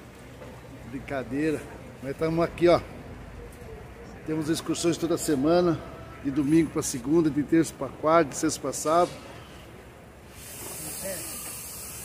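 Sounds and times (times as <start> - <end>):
low background murmur: 0.0 - 12.0
steady high hiss: 10.2 - 12.0.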